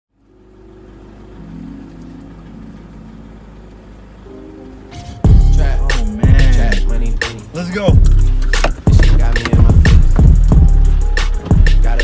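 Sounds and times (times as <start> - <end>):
car cabin rumble: 4.8 - 12.0.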